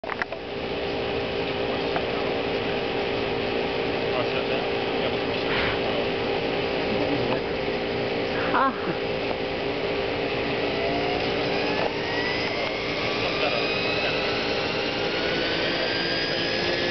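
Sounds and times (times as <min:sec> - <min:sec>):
model helicopter rotor whine: 0:00.0 - 0:16.9.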